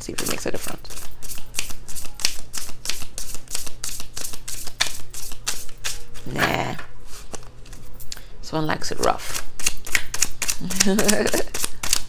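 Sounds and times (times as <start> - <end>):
cards being shuffled by hand: 0.2 - 6.3, 9.3 - 12.0
person humming: 10.6 - 11.6.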